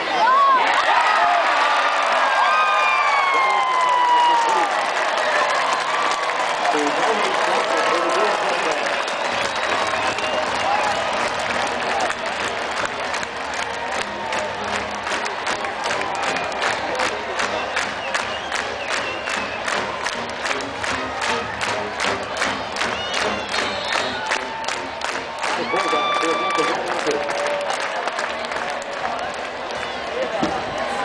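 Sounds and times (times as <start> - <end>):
stadium crowd cheering: 0.0 - 31.0
fast rhythmic beat: 7.0 - 27.2.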